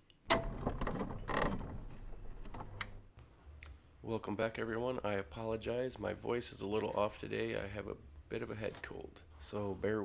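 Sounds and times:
mechanical creaking: 0:00.3 - 0:03.1.

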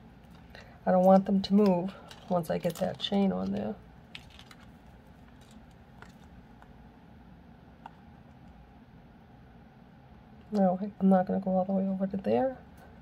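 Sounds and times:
low room noise: 0:00.0 - 0:13.0.

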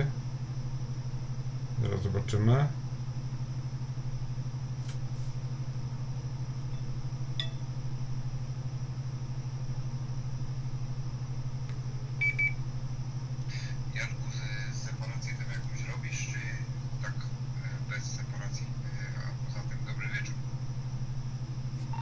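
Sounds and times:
faint high whine: 0:00.0 - 0:22.0
low electrical hum: 0:00.0 - 0:22.0.

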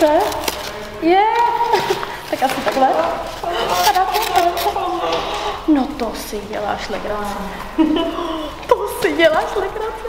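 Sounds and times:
cardboard box rustling: 0:01.7 - 0:05.0
woman exclaiming: 0:03.4 - 0:06.0.

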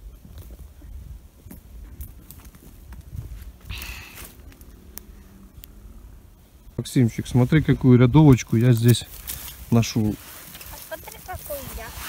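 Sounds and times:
footsteps on dry grass and twigs: 0:00.0 - 0:05.7, 0:07.3 - 0:12.0
rustle: 0:00.0 - 0:12.0
twigs snapping: 0:03.7 - 0:05.8, 0:08.2 - 0:09.8.

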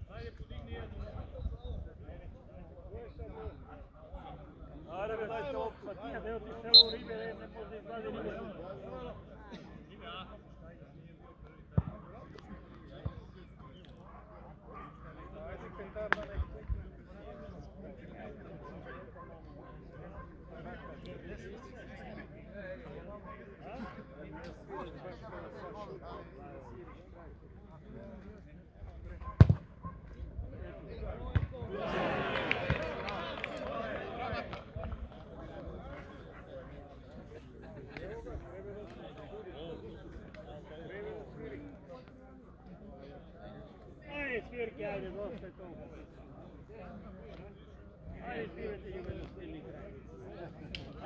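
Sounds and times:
football thuds: 0:29.4 - 0:29.7.

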